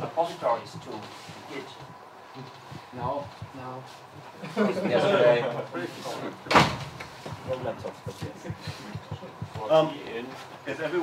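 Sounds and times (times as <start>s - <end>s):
voices in a room: 0.0s - 11.0s
sharp loud thump: 6.5s - 7.0s.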